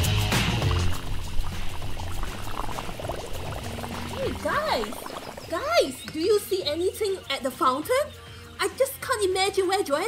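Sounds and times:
music: 0:00.0 - 0:04.3, 0:05.5 - 0:10.0
fountain water running and bubbling: 0:00.4 - 0:06.1.

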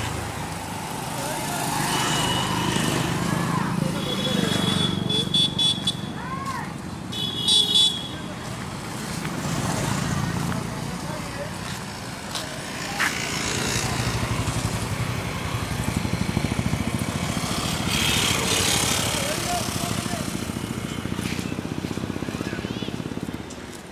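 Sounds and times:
street traffic: 0:00.0 - 0:23.9
vehicle horn: 0:03.9 - 0:06.1, 0:07.1 - 0:08.3
motorcycle engine running: 0:09.2 - 0:23.4.

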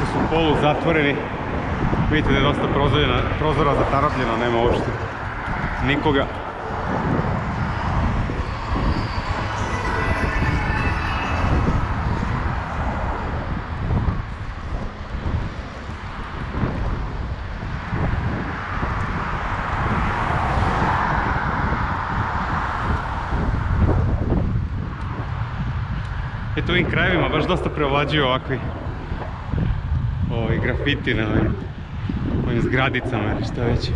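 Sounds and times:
road traffic: 0:00.0 - 0:33.9
wind rumbling on microphone: 0:00.0 - 0:33.9
broad rushing swell: 0:04.4 - 0:15.0.

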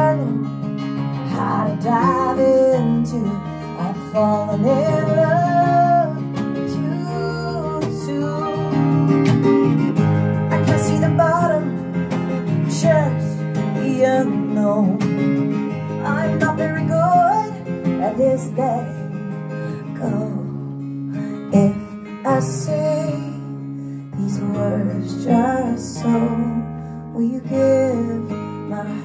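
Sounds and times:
person singing: 0:00.0 - 0:09.6, 0:10.4 - 0:15.4, 0:16.0 - 0:29.0
strummed acoustic guitar: 0:00.0 - 0:29.0.

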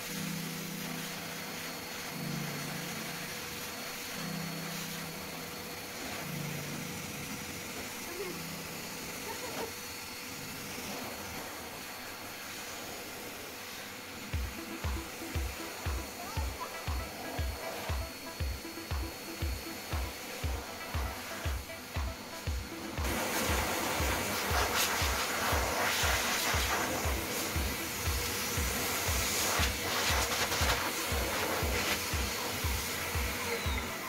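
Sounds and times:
hair dryer blowing: 0:00.0 - 0:34.0
background music with steady beat: 0:13.9 - 0:34.0.

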